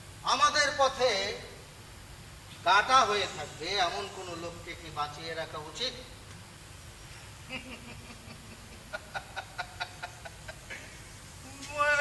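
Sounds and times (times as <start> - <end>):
man speaking: 2.6 - 6.1
man laughing in short bursts: 7.5 - 11.0.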